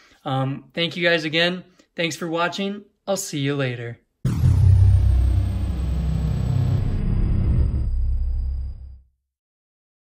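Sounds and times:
high tone gliding downward: 0:04.3 - 0:09.0
low steady rumble: 0:04.3 - 0:09.0.

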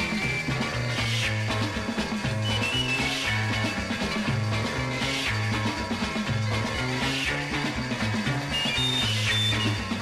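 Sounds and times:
rock and roll jingle music: 0:00.0 - 0:10.0.

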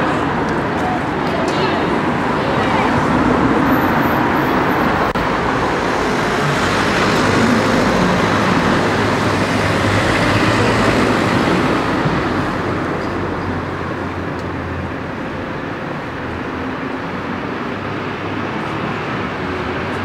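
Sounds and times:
people talking: 0:00.0 - 0:04.4
road traffic going by: 0:00.0 - 0:20.0.

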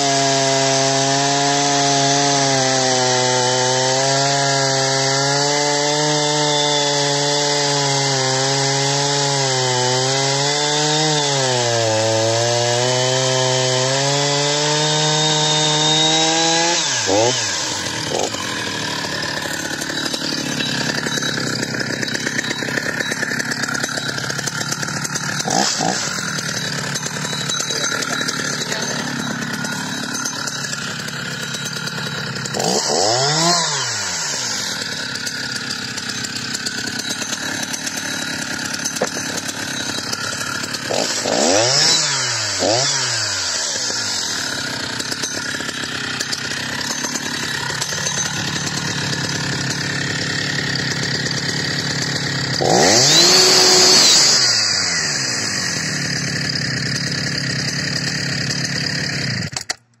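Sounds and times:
chainsaw idling and revving: 0:00.0 - 1:00.0.

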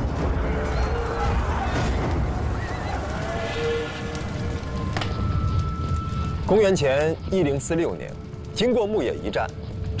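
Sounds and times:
battle ambience: 0:00.0 - 0:10.0
music: 0:00.0 - 0:10.0
steady low rumble: 0:00.0 - 0:10.0.

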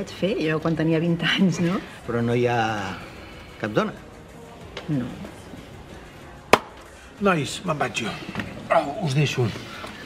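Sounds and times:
sharp knock: 0:06.5 - 0:06.8.

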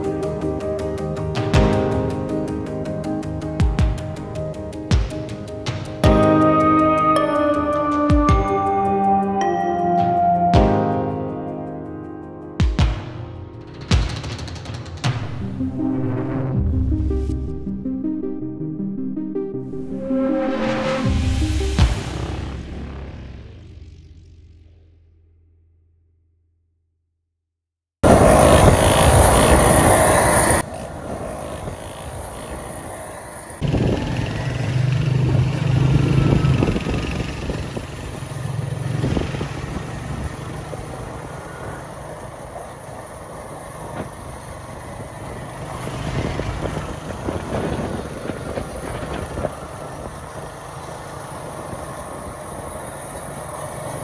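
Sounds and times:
loud rush of noise: 0:13.9 - 0:24.2, 0:28.0 - 0:42.0
small motorcycle engine running: 0:28.1 - 0:54.0.

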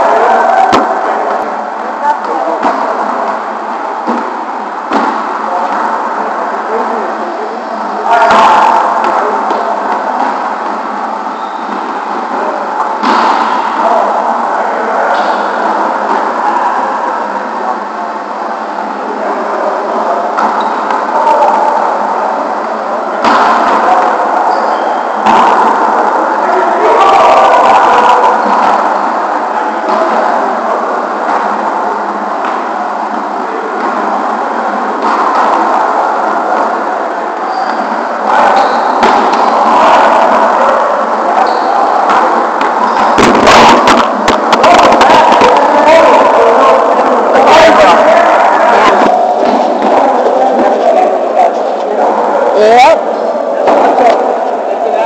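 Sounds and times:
volleyballs being hit: 0:00.0 - 0:01.4, 0:02.2 - 0:06.4, 0:08.1 - 0:14.4, 0:19.9 - 0:52.2, 0:53.6 - 0:54.6
indistinct voices in gym hall: 0:00.0 - 0:55.0.

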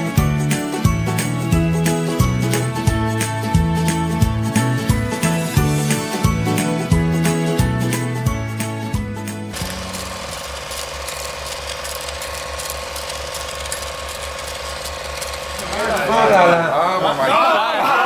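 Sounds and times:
music: 0:00.0 - 0:10.3
film projector clatter: 0:09.5 - 0:16.7
projector hum: 0:09.5 - 0:18.0
voices: 0:15.6 - 0:18.0.

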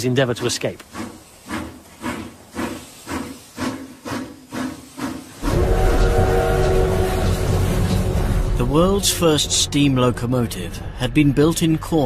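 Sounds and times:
steam locomotive chuffing: 0:00.0 - 0:11.7
loud blast of steam: 0:03.0 - 0:08.6
steam whistle tone: 0:05.4 - 0:08.5.

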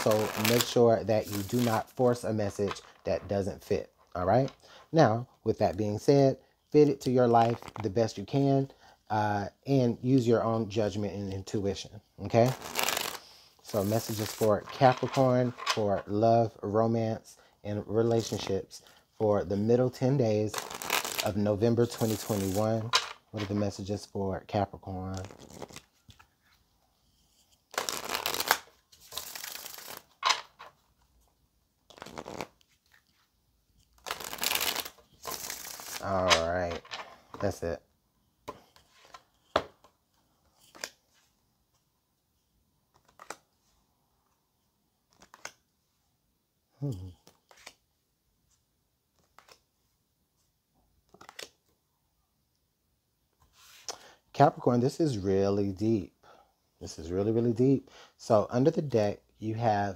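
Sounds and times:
cards being shuffled: 0:00.0 - 0:03.0, 0:07.0 - 0:07.9, 0:12.4 - 0:16.2, 0:20.5 - 0:23.7, 0:25.1 - 0:26.3, 0:27.7 - 0:30.8, 0:31.8 - 0:37.6, 0:38.5 - 0:41.3, 0:42.9 - 0:43.5, 0:45.1 - 0:45.6, 0:46.9 - 0:47.8, 0:49.1 - 0:49.6, 0:51.0 - 0:51.7
cards clicking when handled: 0:42.9 - 0:43.4, 0:45.1 - 0:45.6, 0:49.2 - 0:49.6.

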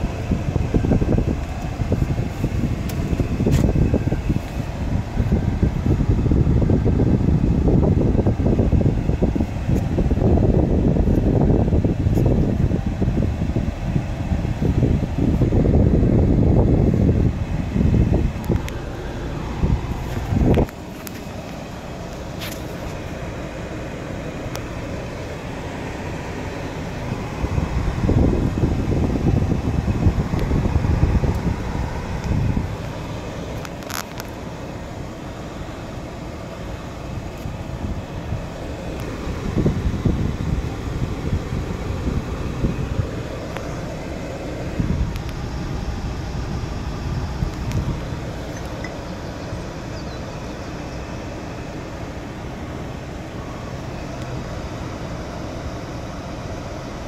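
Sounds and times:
car engine idling: 0:00.0 - 0:57.0
climate control fan rushing: 0:00.0 - 0:57.0.

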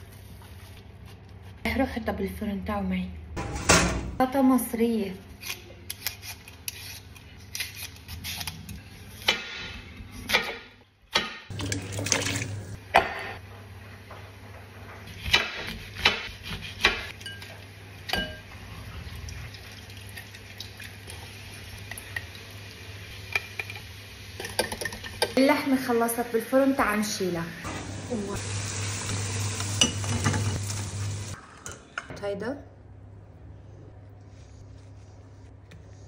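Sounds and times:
potato being peeled: 0:05.4 - 0:09.3
dishes and utensils clinking: 0:29.8 - 0:30.6.

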